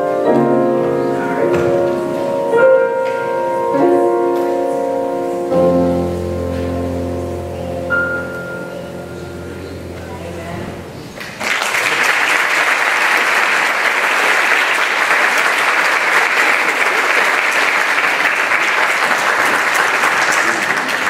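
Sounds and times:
congregation applauding: 11.2 - 21.0.

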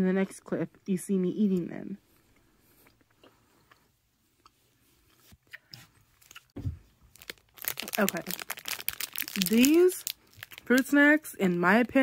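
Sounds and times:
chewing gummy snack: 2.7 - 6.6, 7.2 - 10.8
crackling: 6.2 - 11.0.

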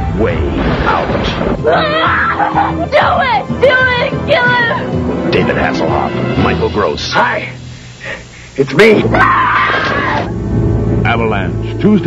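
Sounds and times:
low rumbling music: 0.0 - 12.0
woman screaming: 1.6 - 4.8, 9.1 - 10.3.

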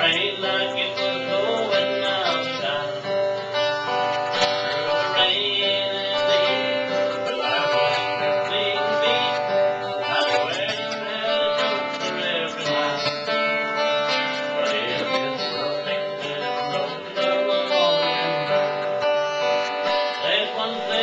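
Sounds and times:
acoustic guitar: 0.0 - 21.0
man singing: 0.0 - 21.0.

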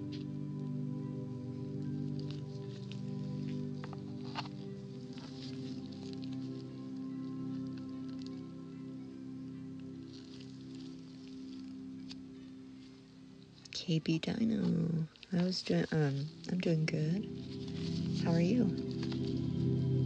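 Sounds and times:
soft background music: 0.0 - 20.0.

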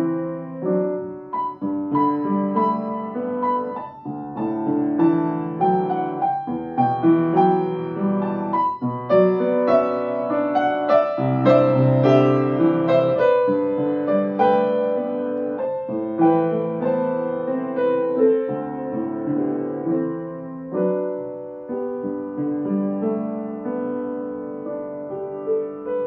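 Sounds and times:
solo piano playing: 0.0 - 26.0.

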